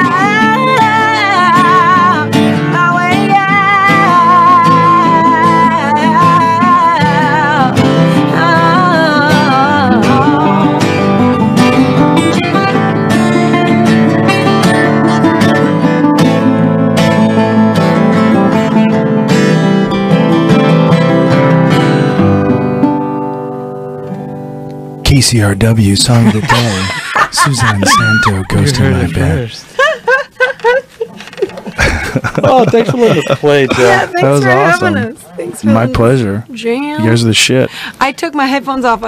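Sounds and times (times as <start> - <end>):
acoustic guitar strumming: 0.0 - 30.6, 31.2 - 39.0
person singing: 26.3 - 27.0, 32.7 - 35.0.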